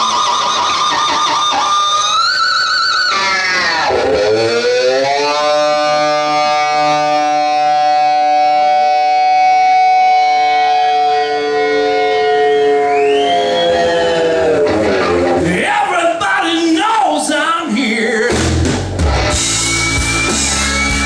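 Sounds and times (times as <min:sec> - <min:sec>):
distorted electric guitar note: 0:00.0 - 0:15.6, 0:18.3 - 0:21.0.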